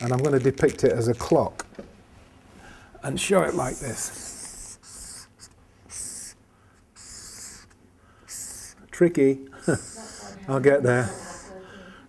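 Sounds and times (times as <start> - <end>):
marker pen scratching on paper: 3.3 - 6.4, 7.0 - 8.8, 9.7 - 10.4, 11.0 - 11.6.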